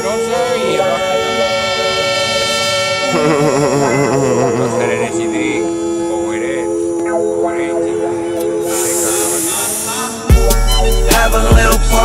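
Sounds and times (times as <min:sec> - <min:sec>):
sustained music chord: 0:00.0 - 0:08.4.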